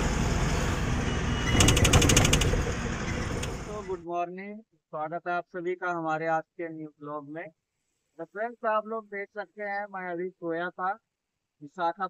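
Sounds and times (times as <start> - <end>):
road and wind noise: 0.0 - 4.0
truck engine rumble: 0.0 - 4.0
fast sharp clicks: 1.5 - 2.8.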